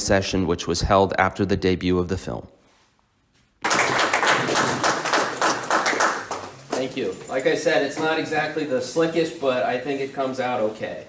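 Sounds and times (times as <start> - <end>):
audience applauding: 3.6 - 7.6.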